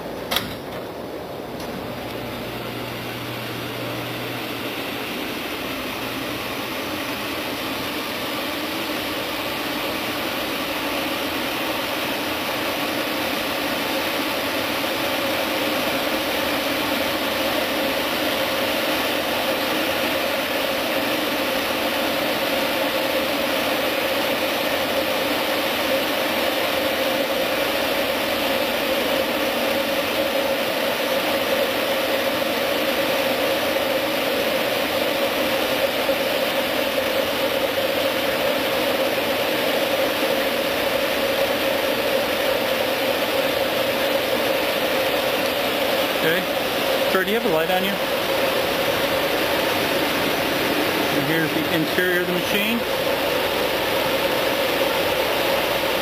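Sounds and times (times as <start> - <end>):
oven machine whirring: 0.0 - 56.0.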